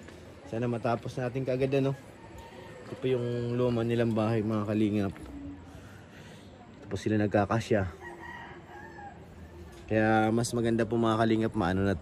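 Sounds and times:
rooster crowing: 7.9 - 9.6.

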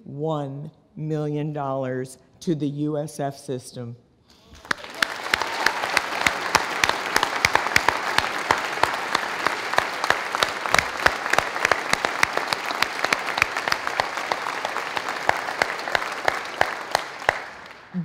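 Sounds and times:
audience applauding: 4.5 - 18.0.

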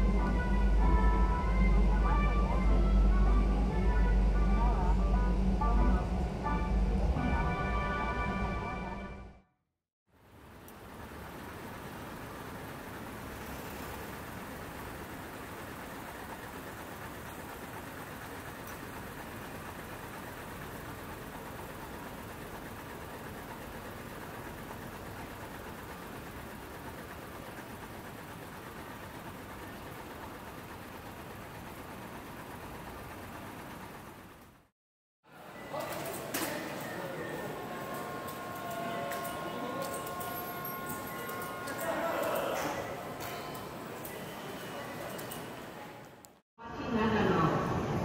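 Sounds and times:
city road traffic hum: 0.0 - 7.4, 10.1 - 34.7, 35.3 - 46.4.

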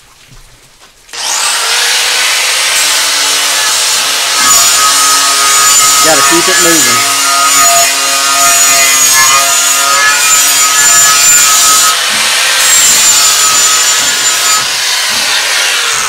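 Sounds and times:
angle grinder polishing tile edge: 1.2 - 16.0.

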